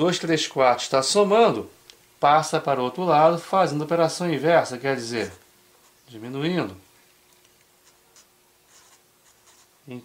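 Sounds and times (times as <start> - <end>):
pen scratching on paper: 7.8 - 9.8.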